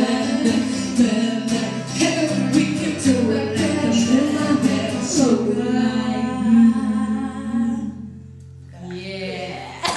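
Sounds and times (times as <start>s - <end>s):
acoustic guitar chord: 0.0s - 8.6s.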